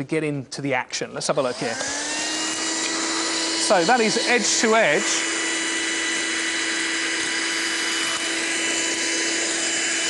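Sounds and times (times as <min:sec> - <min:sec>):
handheld vacuum cleaner running: 0:01.4 - 0:10.0.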